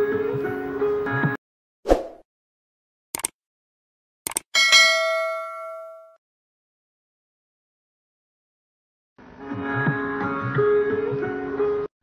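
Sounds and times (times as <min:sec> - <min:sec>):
notification bell chime: 0:04.6 - 0:06.2.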